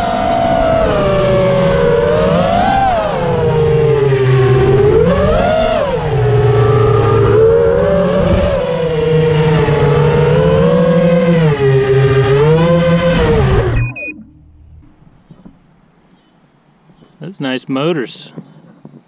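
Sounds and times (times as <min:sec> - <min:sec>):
quadcopter motors whining: 0:00.0 - 0:14.1.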